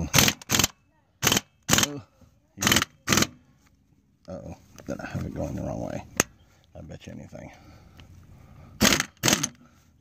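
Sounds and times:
pneumatic tool bursts: 0.0 - 2.0, 2.6 - 3.4, 8.8 - 9.6.

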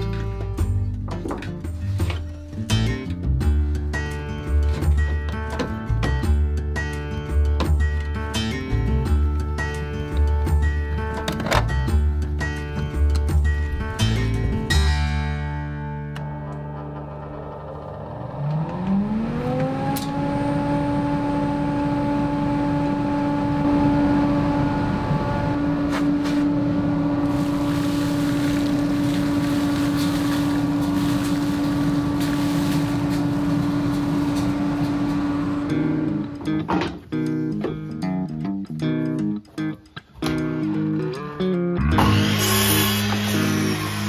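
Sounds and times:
dust collector motor humming: 16.4 - 36.4, 41.9 - 44.0.

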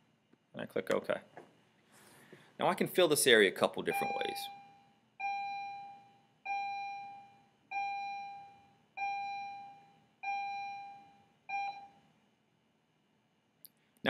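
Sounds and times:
electronic chime dinging: 3.9 - 4.6.

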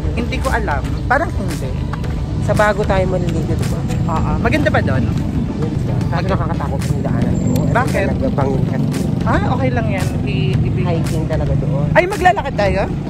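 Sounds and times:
men talking: 0.0 - 13.0.

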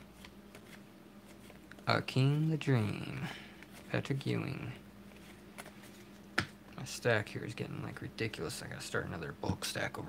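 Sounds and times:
cards flicking and rustling: 0.0 - 1.9, 5.1 - 6.6
man speaking: 1.8 - 4.9, 6.7 - 10.0.

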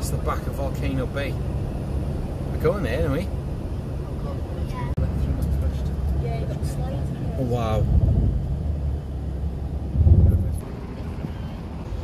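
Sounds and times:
car road rumble from inside: 0.0 - 12.0.

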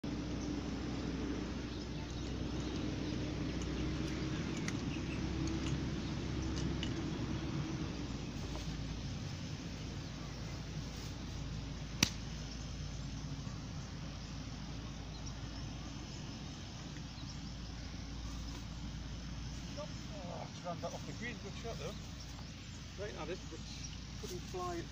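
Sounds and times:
outdoor background noise: 0.0 - 24.9
golf club striking ball: 12.0 - 12.5.

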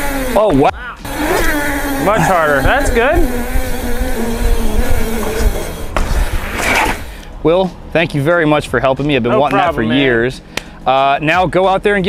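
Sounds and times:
bicycle freehub buzz: 0.0 - 7.2.

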